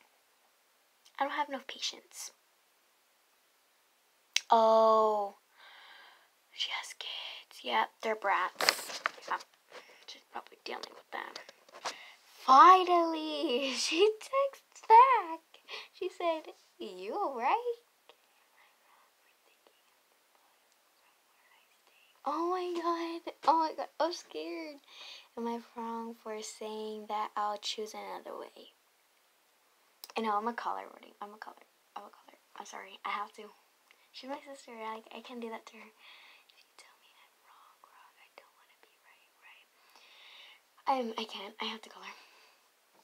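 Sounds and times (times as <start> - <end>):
faint breathy sounds: 5.4 - 7.6, 11.4 - 12.5, 15.5 - 16.8, 18.1 - 22.3, 24.8 - 25.4, 35.9 - 40.8, 41.8 - 42.8
girl whispering: 6.6 - 9.4, 10.0 - 19.9, 21.0 - 26.9, 31.2 - 39.7, 40.8 - 42.3.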